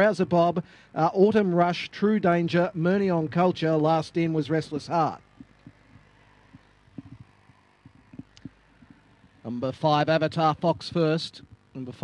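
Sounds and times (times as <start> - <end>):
faint low thumps: 5.2 - 9.4.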